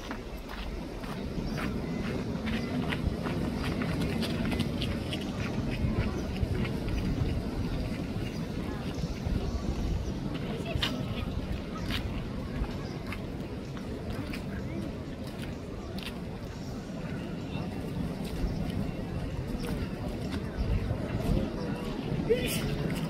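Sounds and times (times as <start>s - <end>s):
people talking in background: 0.0s - 23.0s.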